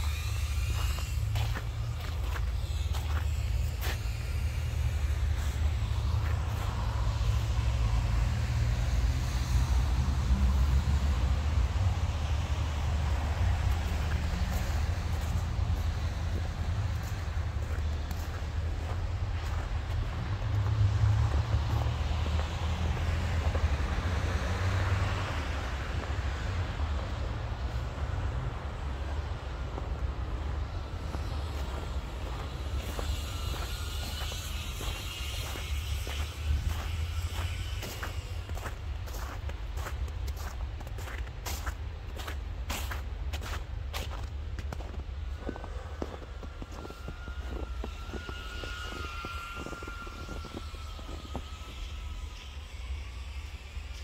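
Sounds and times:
footsteps crunching on snow: 0.0 - 8.3, 12.0 - 24.0, 30.6 - 52.0
low rumble of city traffic: 0.0 - 54.0.

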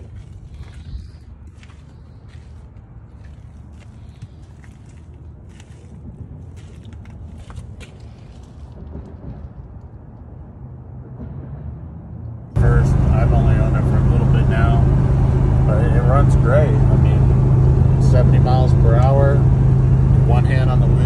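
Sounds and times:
engine and road noise drone: 0.0 - 21.0
low rumble: 0.0 - 21.0.

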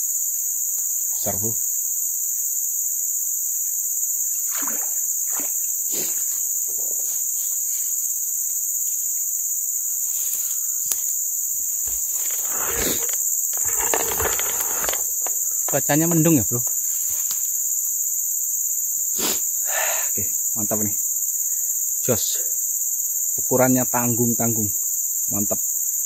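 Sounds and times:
chorus of forest insects: 0.0 - 26.0.

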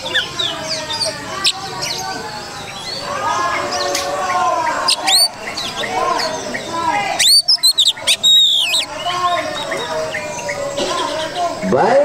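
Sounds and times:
bird singing whistled notes: 0.0 - 11.7.

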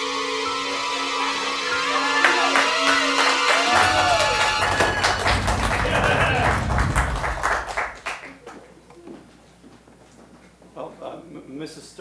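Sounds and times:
studio audience applause: 2.0 - 8.6
dramatic music sting with bass: 3.7 - 8.1.

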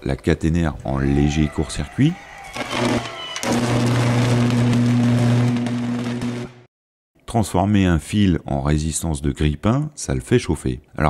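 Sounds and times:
electrical arc buzzing and crackling: 2.5 - 6.7.

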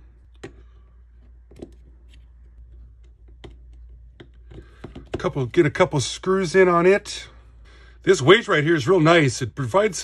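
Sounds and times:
faint low hum: 0.0 - 10.0
small clicks and taps: 2.7 - 5.2.

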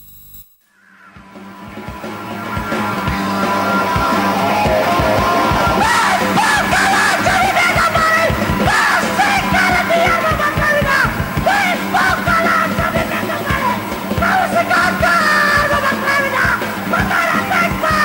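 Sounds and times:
punk rock band playing: 1.1 - 18.0
man singing: 2.0 - 18.0.

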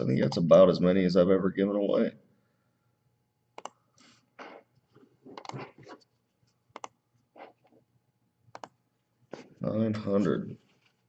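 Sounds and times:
computer mouse and keyboard clicks: 3.6 - 3.8, 5.3 - 5.7, 6.7 - 7.7, 8.5 - 8.8.

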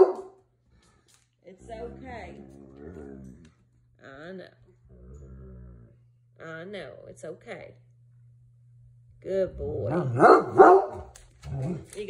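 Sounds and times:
dog barking: 0.0 - 0.4, 10.0 - 11.1.

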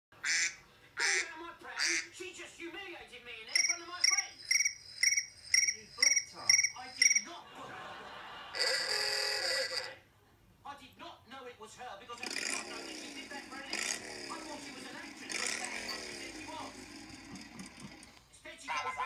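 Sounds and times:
phone ringtone tones: 3.5 - 7.3, 8.6 - 9.9, 18.7 - 19.0
chirping ringtone trill: 3.5 - 7.4, 8.6 - 9.9.

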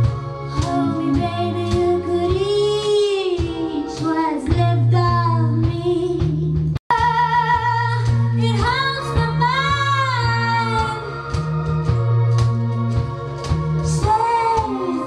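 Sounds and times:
held low accompaniment notes: 0.0 - 15.0
woman singing with vibrato: 0.6 - 6.3, 6.9 - 11.2, 13.9 - 15.0.

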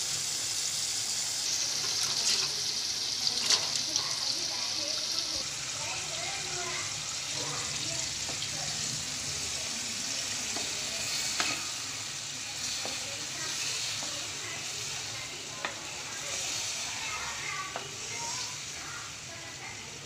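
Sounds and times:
food sizzling in a frying pan: 0.0 - 20.0
spatula stirring: 1.5 - 4.1, 9.9 - 18.6
spatula clicking against pan: 10.5 - 11.7.

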